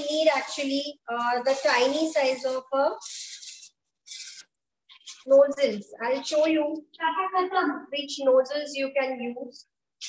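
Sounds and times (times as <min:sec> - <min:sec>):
plastic bag crinkling: 0:00.1 - 0:04.4.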